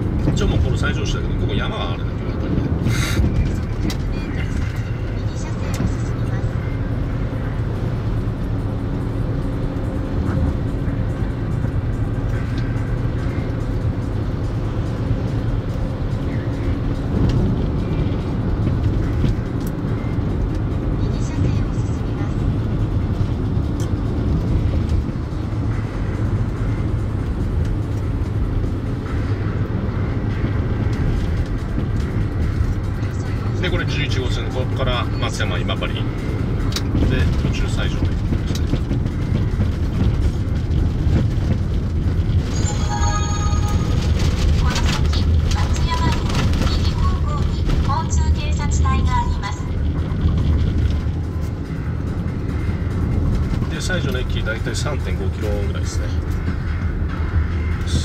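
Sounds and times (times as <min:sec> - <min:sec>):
car engine and road noise: 0:00.0 - 0:58.0.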